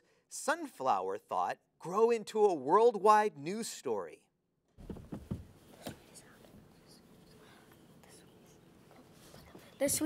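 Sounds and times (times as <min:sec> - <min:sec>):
room hum: 0:04.8 - 0:10.0
children whispering: 0:05.8 - 0:10.0.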